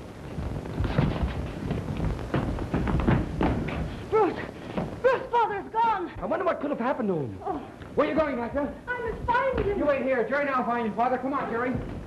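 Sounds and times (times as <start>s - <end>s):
soundtrack hiss: 0.0s - 12.0s
thuds and scuffling: 0.2s - 5.0s.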